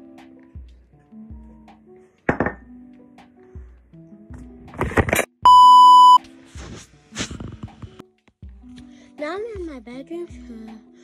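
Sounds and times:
faint background music: 0:00.0 - 0:11.0
loud electronic beep: 0:05.5 - 0:06.2.

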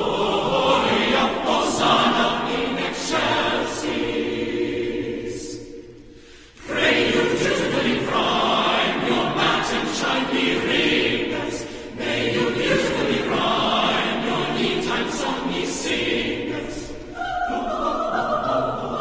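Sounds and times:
mixed choir singing a carol: 0:00.0 - 0:19.0.

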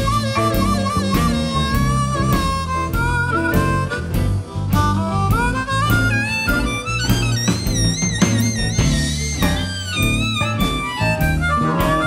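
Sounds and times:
bass: 0:00.0 - 0:12.0
electric guitar: 0:00.0 - 0:12.0
harmonica solo: 0:00.0 - 0:12.0
steady drum beat: 0:00.0 - 0:12.0.

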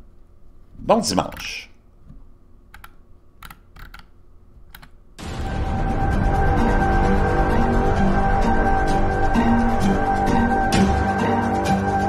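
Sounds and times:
computer keyboard clicks: 0:02.7 - 0:04.1, 0:04.7 - 0:05.0
loud outro music: 0:05.2 - 0:12.0.

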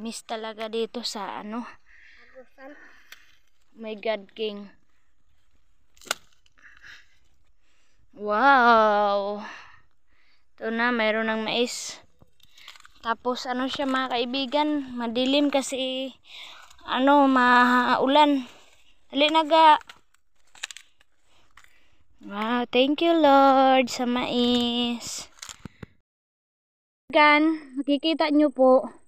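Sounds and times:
footsteps on dry stalks: 0:02.9 - 0:08.2, 0:09.9 - 0:22.4
sharp crack: 0:05.9 - 0:06.8.

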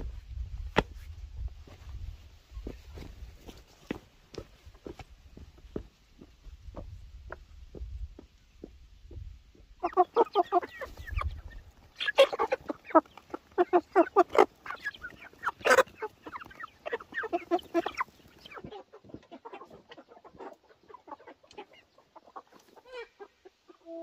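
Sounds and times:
chickens clucking: 0:02.1 - 0:24.0.

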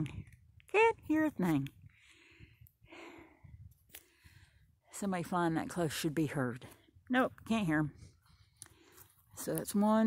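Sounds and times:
faint breaths near microphone: 0:01.8 - 0:05.6, 0:07.8 - 0:09.5.

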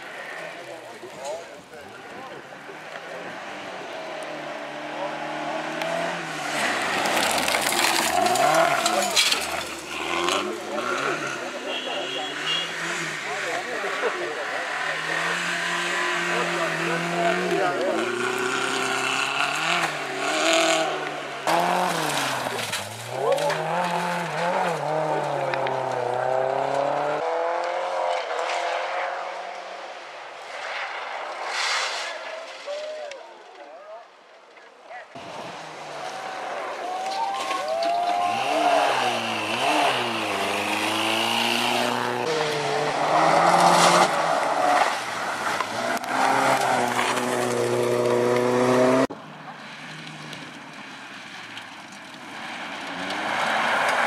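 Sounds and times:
gravel and tyre noise: 0:00.0 - 0:54.0
rally car engine revving: 0:02.1 - 0:32.6, 0:35.1 - 0:36.9, 0:37.5 - 0:54.0.

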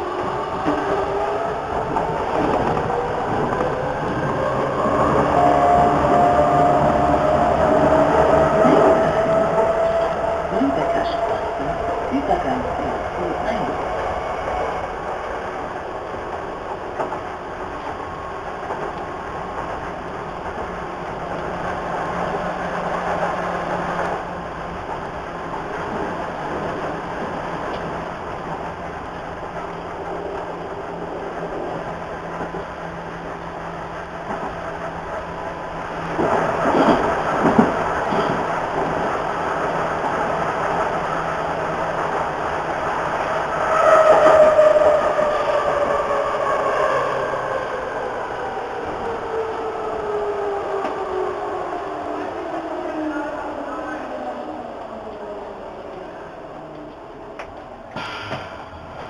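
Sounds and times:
metro train rolling: 0:00.0 - 0:59.0.

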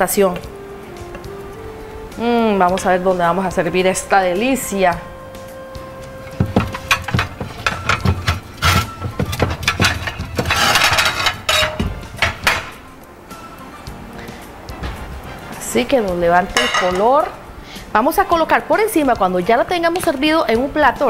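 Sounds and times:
quiet background music: 0:00.0 - 0:21.0
ceramic plates clinking: 0:06.3 - 0:12.8, 0:16.5 - 0:17.4.

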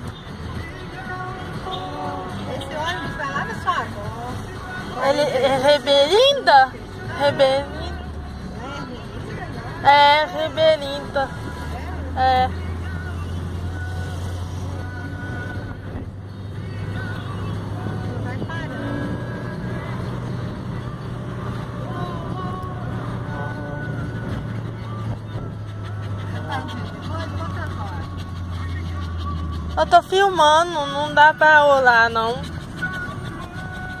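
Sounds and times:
car interior driving drone: 0:00.0 - 0:34.0
faint voices: 0:16.8 - 0:34.0.

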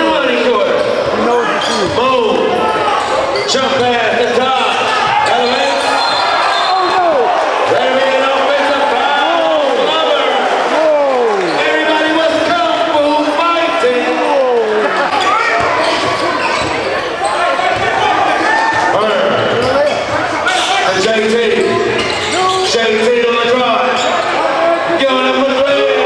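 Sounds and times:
people shouting in gym: 0:14.8 - 0:19.0.

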